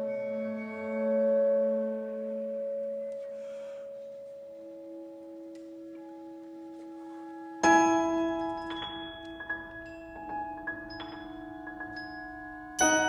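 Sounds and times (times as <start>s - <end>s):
chamber music held tones: 0.0s - 13.0s.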